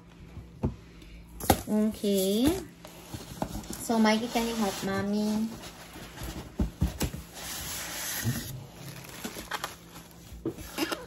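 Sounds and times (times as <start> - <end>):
cardboard and plastic rustling: 1.4 - 11.0
packaging knocks and crinkles: 8.1 - 10.6.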